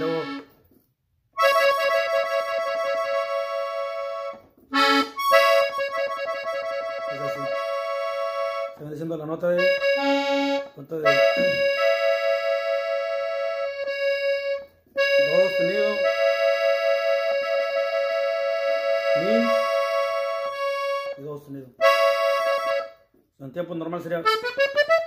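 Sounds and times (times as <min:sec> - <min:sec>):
button accordion played slowly: 0:00.0 - 0:23.3, 0:23.9 - 0:25.0.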